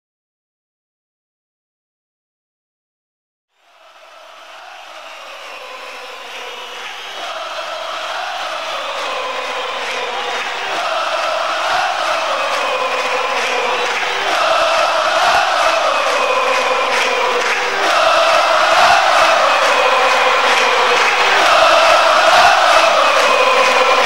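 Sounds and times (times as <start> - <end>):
massed chanting voices: 3.6 - 24.0.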